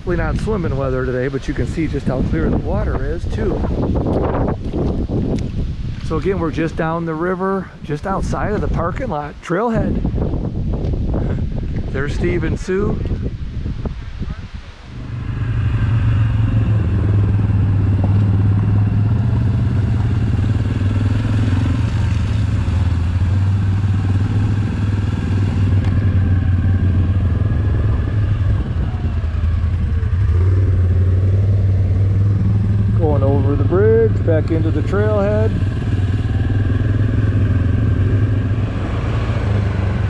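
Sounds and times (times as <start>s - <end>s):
quad bike engine running: 14.9s - 40.0s.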